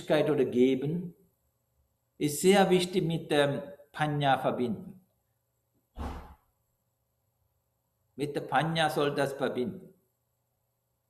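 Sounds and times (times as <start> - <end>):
man speaking: 0.0 - 1.2, 2.2 - 5.0, 8.2 - 9.9.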